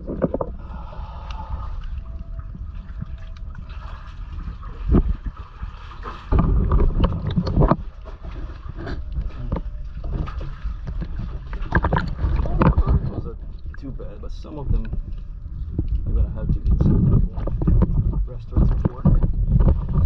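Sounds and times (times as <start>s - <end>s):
water sloshing and splashing: 0.0s - 20.0s
wind rumble: 0.0s - 20.0s.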